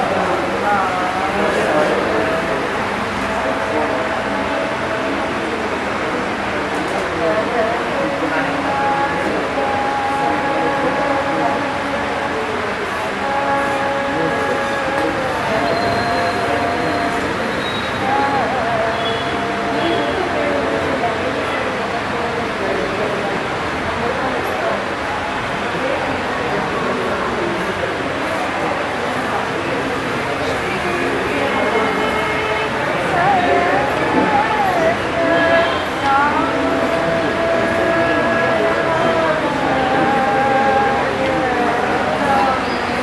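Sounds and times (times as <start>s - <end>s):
person singing long notes: 0.0s - 43.0s.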